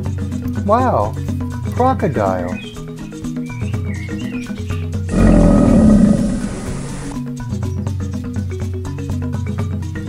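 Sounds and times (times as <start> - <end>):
crocodile roar: 5.1 - 7.2.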